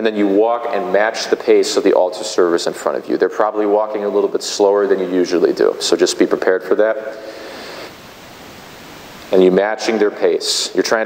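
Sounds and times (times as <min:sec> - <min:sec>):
echo of man's voice: 0:00.0 - 0:07.3, 0:09.3 - 0:11.0
room noise hiss: 0:00.0 - 0:11.0.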